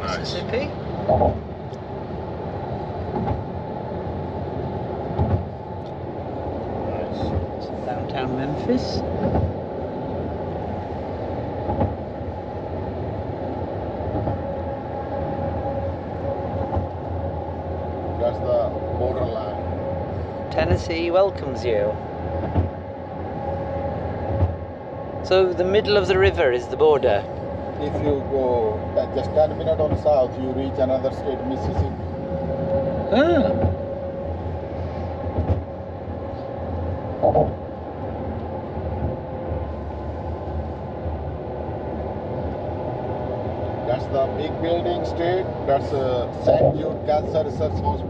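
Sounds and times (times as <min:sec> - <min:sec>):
car road noise rumble: 0:00.0 - 0:48.0.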